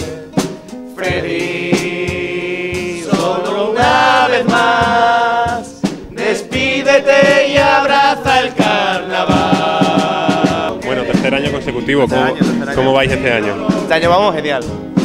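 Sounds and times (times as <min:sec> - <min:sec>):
men singing in chorus: 0:00.0 - 0:14.1
strummed acoustic guitar: 0:00.0 - 0:15.0.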